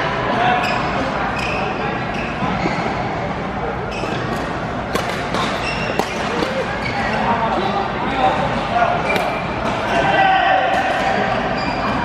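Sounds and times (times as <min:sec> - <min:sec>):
shoe squeaks on court: 0:03.9 - 0:04.5, 0:05.2 - 0:07.3
racket hitting shuttlecock: 0:04.3 - 0:06.7, 0:09.0 - 0:09.9.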